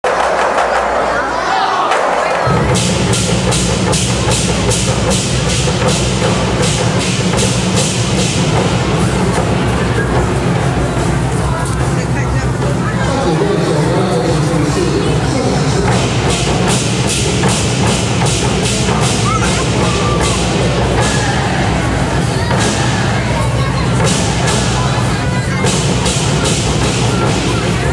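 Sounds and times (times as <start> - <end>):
low barrel drumming: 1.9 - 27.9.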